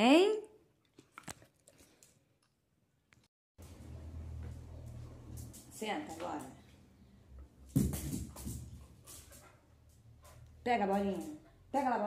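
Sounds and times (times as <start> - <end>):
dog's claws on tiled floor: 4.4 - 6.8, 7.6 - 12.0.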